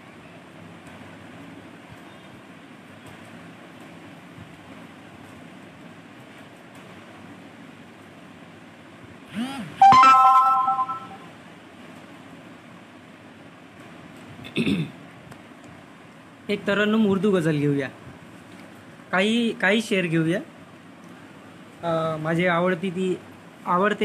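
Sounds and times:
loud electronic chime: 9.8 - 11.3.

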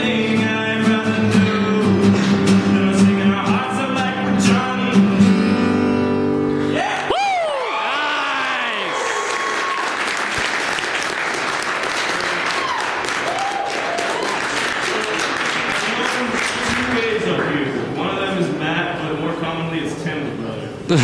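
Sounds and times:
acoustic guitar chord ringing: 0.0 - 6.7
audience whooping and applauding: 6.8 - 16.0.

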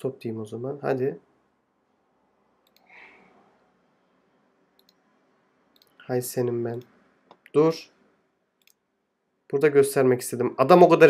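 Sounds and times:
computer mouse clicks: 2.6 - 3.2, 4.8 - 5.0, 5.7 - 6.1
soft breath-like hiss: 2.8 - 3.7.

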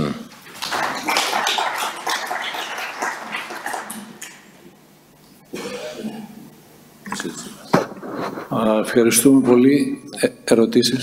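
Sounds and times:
audience applauding: 0.3 - 4.5.

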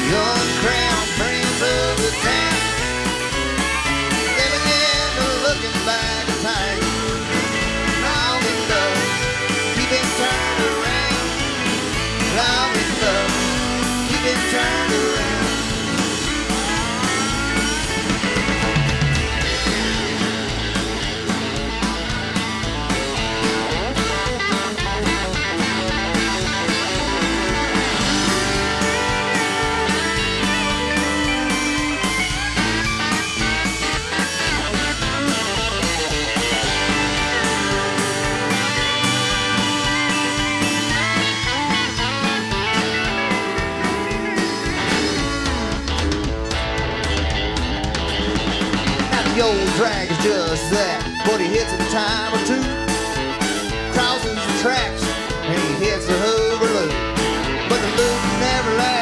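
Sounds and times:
bass and drums: 0.0 - 59.0
electric guitar: 0.0 - 59.0
fiddle: 0.0 - 59.0.

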